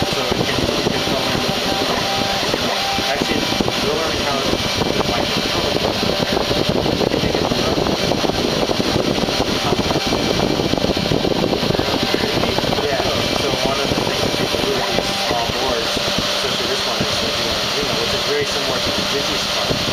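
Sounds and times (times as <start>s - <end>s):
router spindle milling: 0.0s - 19.9s.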